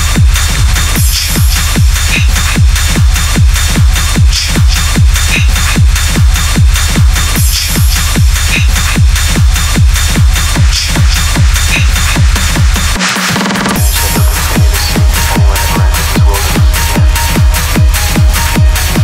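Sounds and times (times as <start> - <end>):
hi-hats and high percussion: 0.0 - 19.0
techno kick drum: 0.0 - 19.0.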